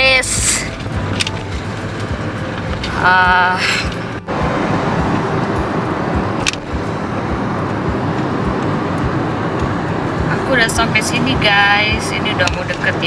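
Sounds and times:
road and engine noise in car: 0.0s - 13.0s.

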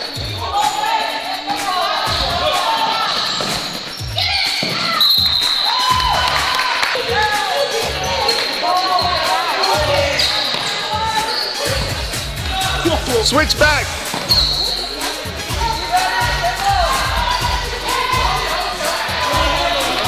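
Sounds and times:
sneaker squeaks: 2.1s - 6.4s, 7.3s - 12.3s, 13.3s - 15.9s.

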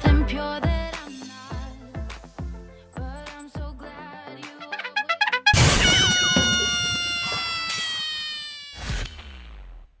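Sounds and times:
crash of noise: 5.6s - 8.0s.

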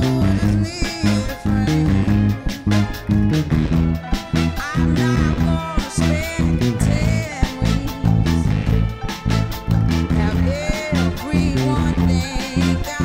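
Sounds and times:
band with drums: 0.0s - 13.0s
electric bass walking line: 0.0s - 13.0s.

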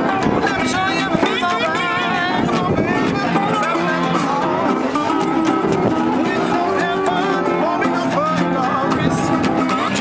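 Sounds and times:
acoustic guitar: 0.0s - 10.0s
electric guitar: 0.0s - 10.0s
resonator guitar: 0.0s - 10.0s.

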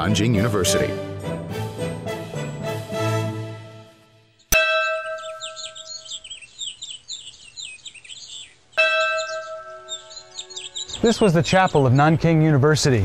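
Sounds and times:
birds chirping: 4.2s - 13.0s
ringing bell-like struck note: 4.5s - 6.2s, 8.8s - 10.6s.

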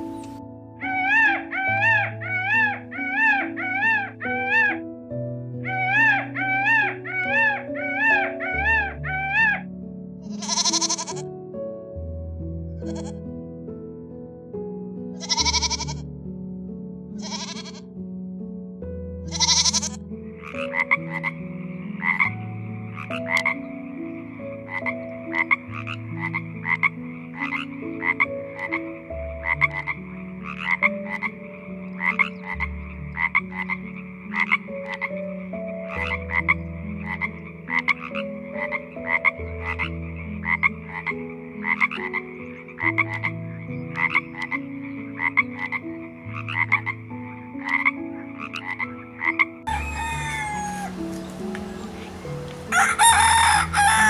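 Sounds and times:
frog croaking: 0.0s - 4.8s, 5.6s - 11.3s, 12.8s - 13.2s, 15.2s - 16.1s, 17.1s - 17.9s, 19.2s - 54.0s.

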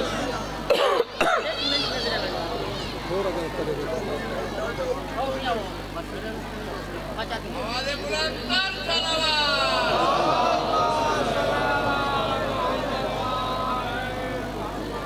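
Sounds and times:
low electrical hum: 0.0s - 15.0s
man coughing and clearing throat: 0.7s - 1.5s.

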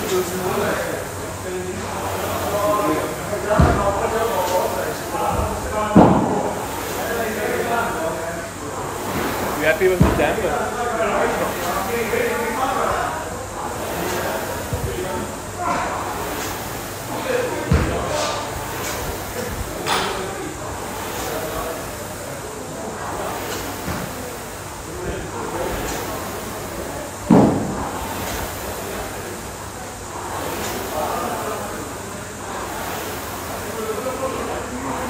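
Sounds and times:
rowing machine flywheel rushing: 0.0s - 35.0s
voices in echoing hall: 0.0s - 35.0s
heavy thuds: 3.4s - 7.0s, 8.8s - 10.7s, 17.6s - 19.8s.

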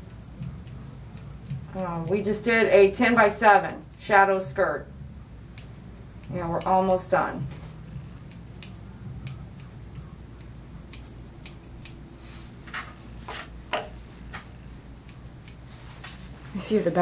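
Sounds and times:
scissors snipping hair: 0.0s - 4.3s, 5.5s - 12.2s, 14.3s - 16.3s.

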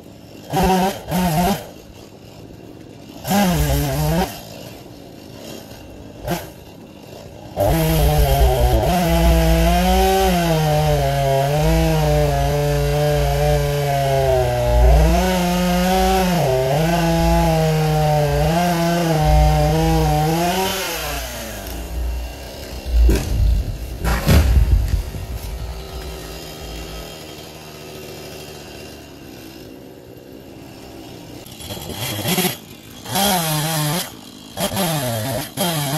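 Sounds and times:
chainsaw cutting wood: 0.0s - 35.9s
tree cracking and thudding down: 18.2s - 27.3s.

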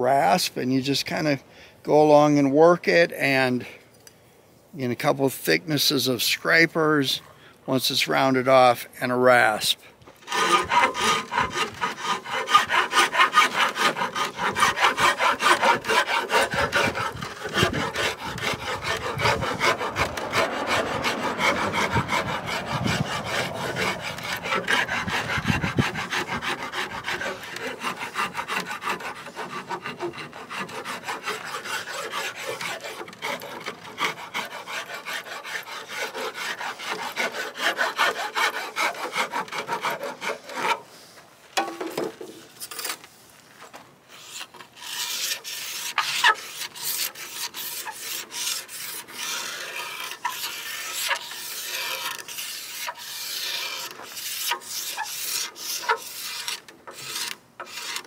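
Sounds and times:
rasp scraping wood: 10.2s - 41.0s, 44.1s - 58.0s.

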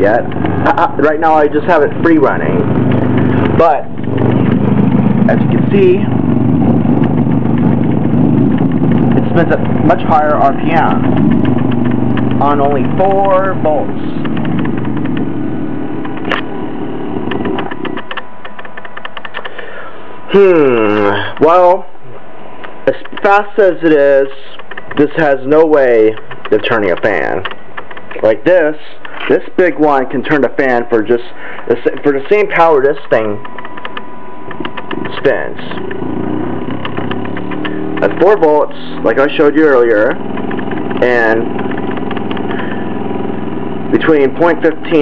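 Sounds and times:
faint motor clicks: 10.7s - 13.6s, 14.2s - 15.3s, 17.2s - 19.7s, 22.6s - 23.5s, 26.0s - 28.3s, 31.5s - 36.0s, 36.7s - 38.5s, 40.2s - 42.6s
small motor humming with clicking: 40.2s - 42.8s.

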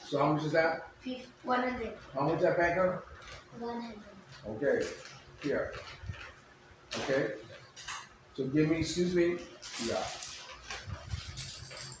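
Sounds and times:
plastic bag rustling: 4.4s - 7.7s, 9.4s - 12.0s.

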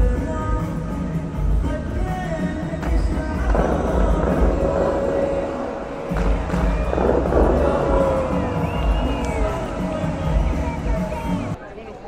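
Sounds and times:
fountain show music over speakers: 0.0s - 11.6s
rushing bursts of water: 3.6s - 10.3s.

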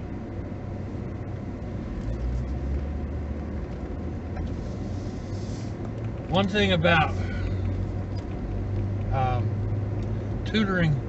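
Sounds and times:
car engine and road hum: 0.0s - 11.0s.

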